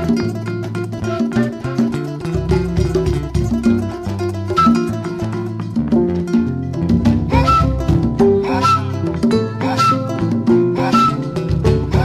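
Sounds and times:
hand drums: 0.0 - 12.0
kora plucked notes: 0.0 - 12.0.

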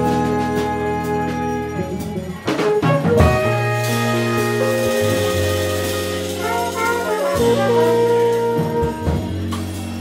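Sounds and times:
jazz fusion band playing: 0.0 - 10.0.

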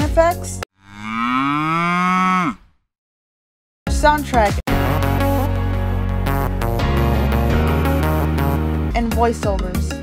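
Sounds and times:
cow mooing: 0.8 - 2.8.

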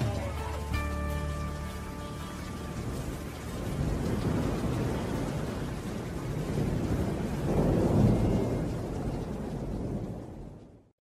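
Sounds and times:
steady rain: 0.0 - 11.0
low rolling thunder: 2.4 - 10.9.

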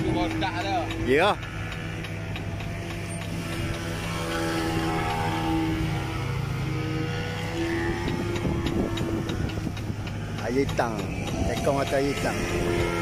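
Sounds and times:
boat engine running: 0.0 - 13.0
on-and-off whine: 0.0 - 13.0.

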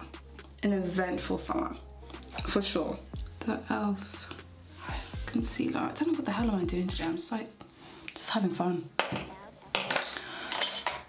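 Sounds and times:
makeup products clinking: 9.0 - 11.0.

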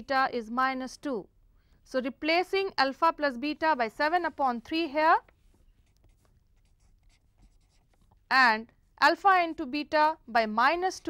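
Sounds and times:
marker pen writing on paper: 5.6 - 8.2.

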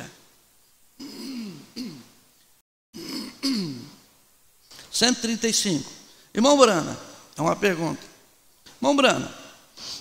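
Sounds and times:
man clearing his throat: 1.0 - 2.2, 3.0 - 4.0.

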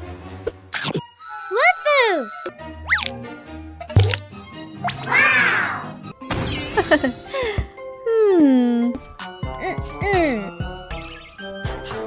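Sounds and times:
background music: 0.0 - 12.0
tinkling magic sparkle jingle: 6.5 - 7.4.

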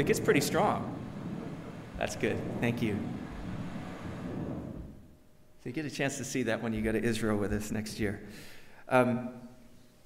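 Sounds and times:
wind rushing on microphone: 0.0 - 5.2.

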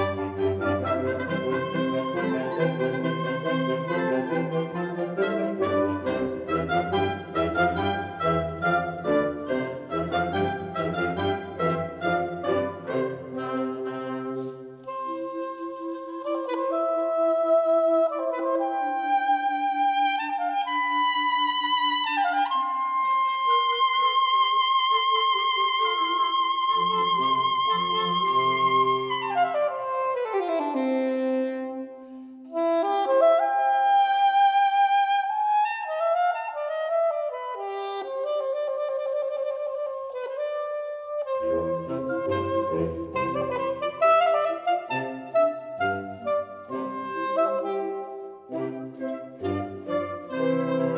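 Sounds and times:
soprano saxophone solo: 0.0 - 50.9
wind ensemble playing: 0.0 - 50.9.

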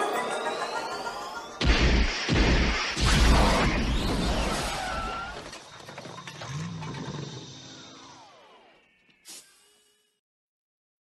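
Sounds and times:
noisy crash-like sound effect: 1.6 - 5.6.

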